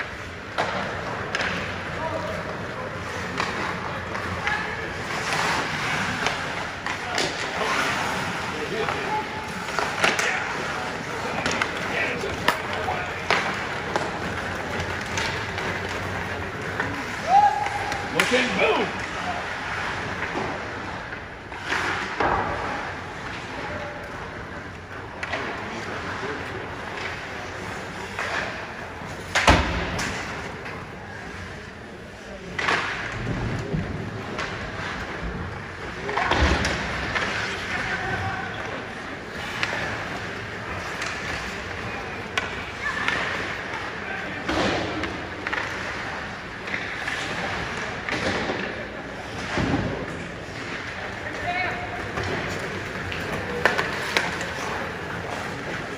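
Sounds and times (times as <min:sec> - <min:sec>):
skate blades scraping ice: 0:00.0 - 0:55.9
spectators talking: 0:00.0 - 0:55.9.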